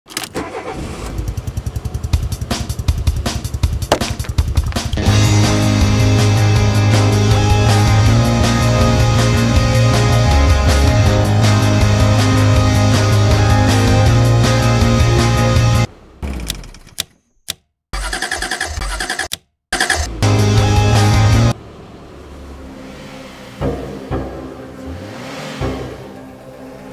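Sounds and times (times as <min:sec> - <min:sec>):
car engine cranking clicks: 0:00.1 - 0:01.3, 0:16.2 - 0:20.2
small car engine idling: 0:00.3 - 0:16.9, 0:19.8 - 0:26.9.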